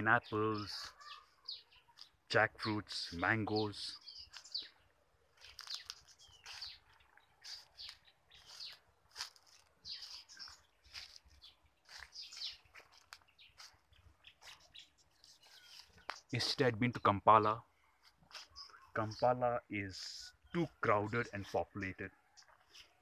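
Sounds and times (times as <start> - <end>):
birds chirping: 0.0 - 23.0.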